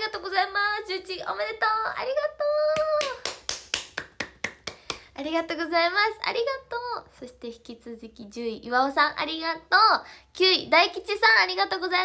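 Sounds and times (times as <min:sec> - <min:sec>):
person clapping hands: 0:02.8 - 0:05.1.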